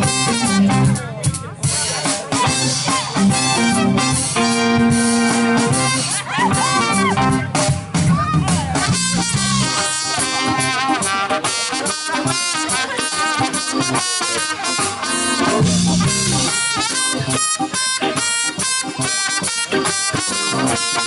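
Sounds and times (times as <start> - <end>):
trumpet melody: 0.0 - 1.1, 2.4 - 7.8, 8.4 - 21.0
drum kit beat: 0.0 - 21.0
electric guitar: 0.0 - 21.0.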